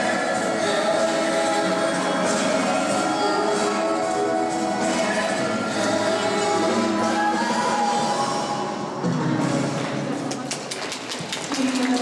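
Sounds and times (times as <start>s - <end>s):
music: 0.0s - 12.0s
voices in a hall: 0.0s - 12.0s
audience clapping: 10.2s - 12.0s.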